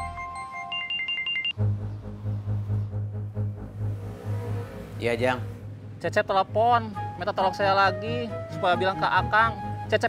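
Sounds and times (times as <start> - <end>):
phone beeping: 0.0 - 1.6
soft melodic music: 0.0 - 3.6, 6.1 - 10.0
low pulsing music: 1.6 - 10.0.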